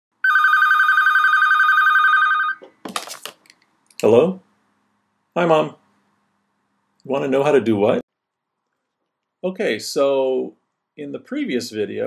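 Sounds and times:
telephone ringing trill: 0:00.2 - 0:02.6.

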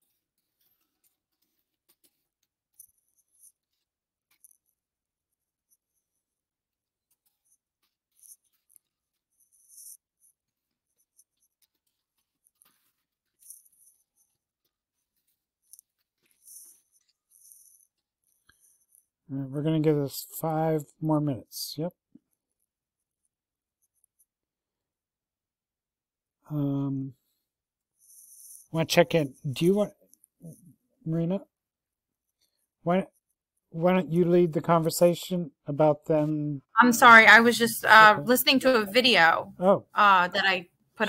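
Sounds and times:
faint scratchy sounds: 0:36.1 - 0:39.4.

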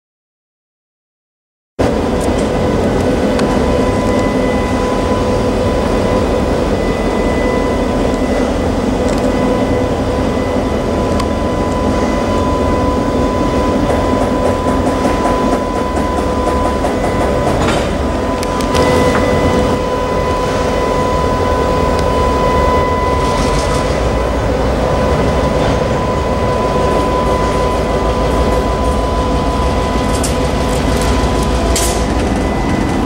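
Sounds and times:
diesel locomotive engine rumble: 0:01.8 - 0:33.0.

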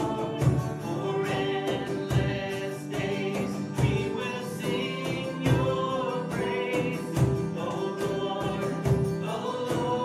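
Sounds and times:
man and woman singing worship song: 0:00.0 - 0:10.0
strummed acoustic guitar: 0:00.0 - 0:10.0.

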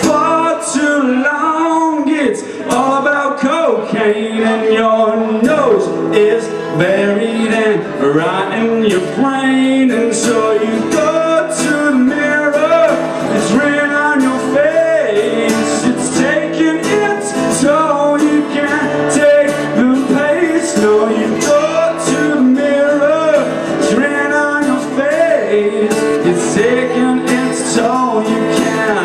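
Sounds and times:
acoustic guitar strumming: 0:00.0 - 0:29.0
man singing: 0:00.0 - 0:29.0.

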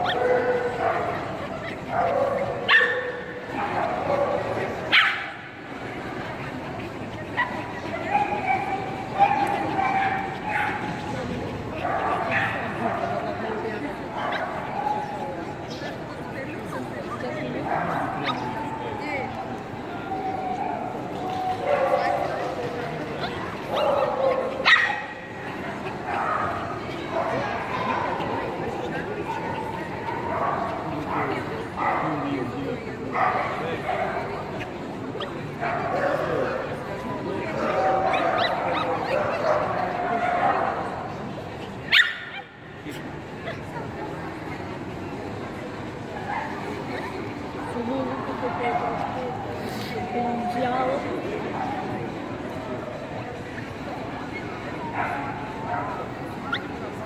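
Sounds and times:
dogs barking and yipping: 0:00.0 - 0:05.4, 0:37.6 - 0:40.9
crowd chatter: 0:00.0 - 0:57.0.

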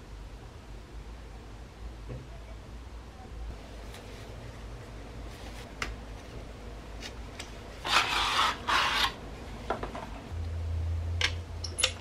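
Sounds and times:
plastic scraping against cardboard: 0:07.8 - 0:09.2.

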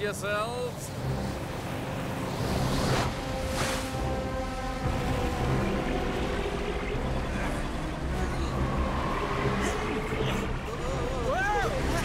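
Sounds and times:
dramatic background music: 0:00.0 - 0:12.0
rumble of churning water: 0:00.0 - 0:12.0.

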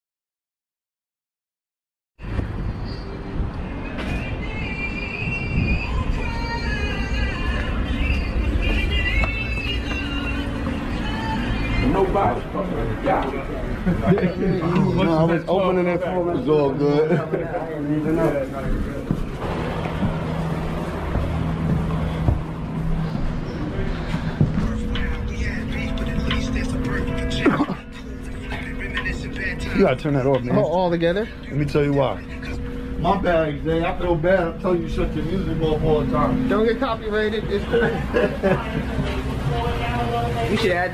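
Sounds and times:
low hum: 0:02.2 - 0:40.9
low street rumble: 0:02.2 - 0:40.9
music playing: 0:02.8 - 0:15.9, 0:19.2 - 0:40.9.

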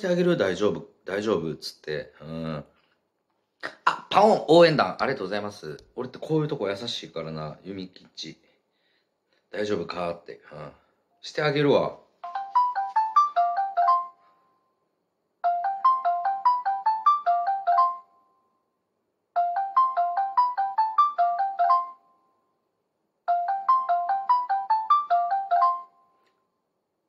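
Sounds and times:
phone ringback melody: 0:12.2 - 0:14.4, 0:15.4 - 0:18.2, 0:19.4 - 0:22.2, 0:23.3 - 0:26.1.

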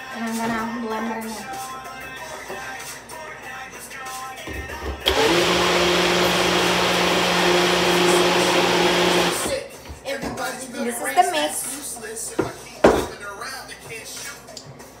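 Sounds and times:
blender motor humming: 0:05.0 - 0:09.6.

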